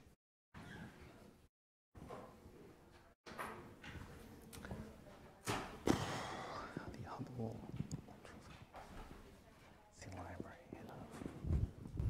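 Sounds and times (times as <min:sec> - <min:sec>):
quiet murmured voices: 0:03.9 - 0:12.0.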